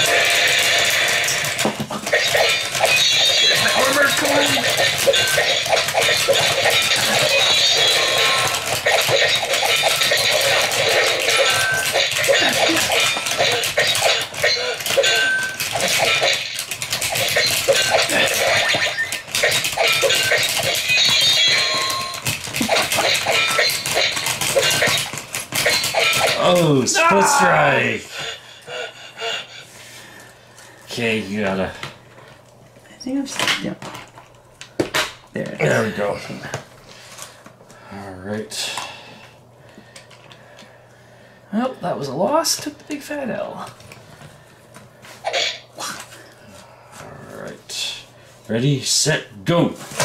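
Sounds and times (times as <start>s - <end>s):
plastic figures clicking and clacking: 0.0s - 26.8s
fast fight music from toy speaker: 0.0s - 27.6s.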